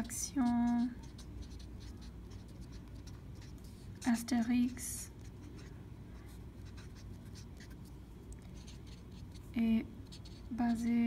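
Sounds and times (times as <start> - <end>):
marker scratching on paper: 0.0 - 11.0.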